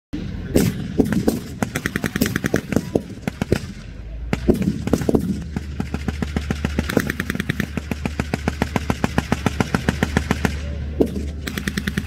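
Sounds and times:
armoured vehicle engines running: 0.2 - 12.0
blank gunshots: 0.4 - 12.0
machine-gun burst: 0.6 - 12.0.

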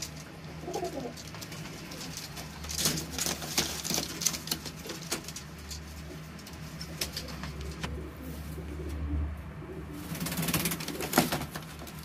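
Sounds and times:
pigeon cooing: 0.4 - 3.2, 6.0 - 12.0.

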